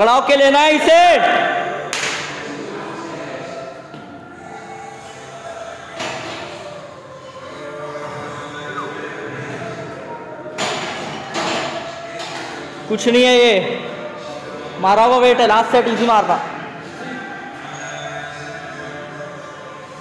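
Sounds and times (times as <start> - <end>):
faint voices: 1.2 - 20.0.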